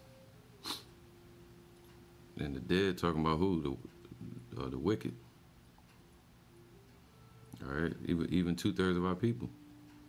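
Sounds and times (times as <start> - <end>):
faint steady tone: 0.0 - 10.0
brief hiss: 0.6 - 0.9.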